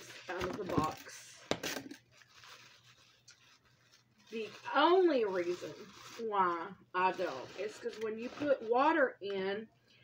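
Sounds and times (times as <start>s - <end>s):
packaging rustling and scraping: 0.0s - 8.9s.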